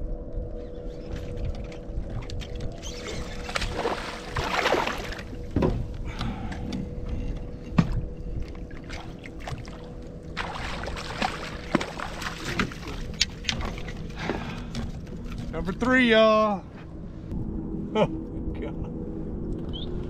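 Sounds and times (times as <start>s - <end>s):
water splashing: 2.2s - 5.5s, 8.6s - 15.5s.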